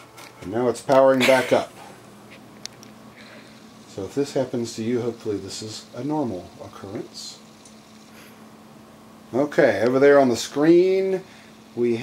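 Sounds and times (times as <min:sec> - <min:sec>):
computer fans humming: 0:00.0 - 0:12.0.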